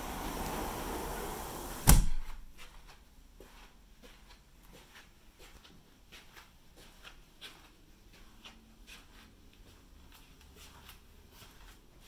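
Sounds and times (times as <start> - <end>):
road traffic passing: 0.0 - 1.8
glass door shutting: 0.0 - 2.4.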